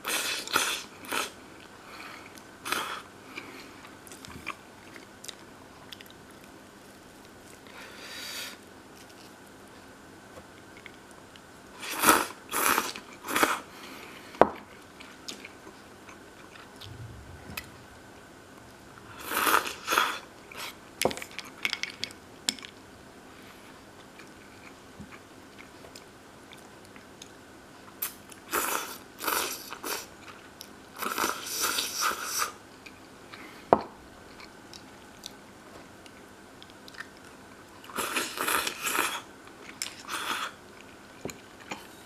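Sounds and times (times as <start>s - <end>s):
person chewing noodles: 36.1s - 41.9s.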